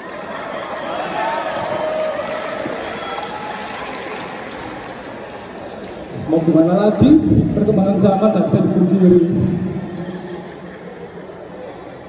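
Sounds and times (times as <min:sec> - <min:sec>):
audience applause: 0:00.0 - 0:06.7.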